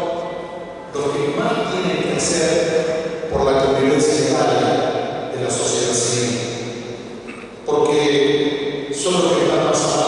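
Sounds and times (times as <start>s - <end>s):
man speaking into microphone: 0.0s - 10.0s.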